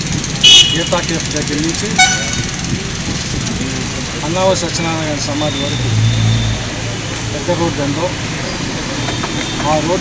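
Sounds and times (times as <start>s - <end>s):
road traffic hum: 0.0s - 10.0s
vehicle horn toot: 0.4s - 1.1s, 1.9s - 2.6s.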